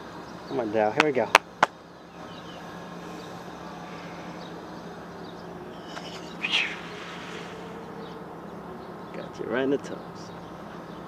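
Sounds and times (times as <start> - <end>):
steady background hum: 0.0 - 11.0
short high chirp: 5.8 - 7.6.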